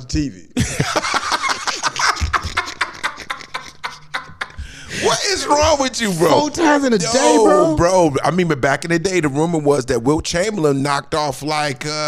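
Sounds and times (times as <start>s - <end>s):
men laughing hard: 0.6s - 7.7s.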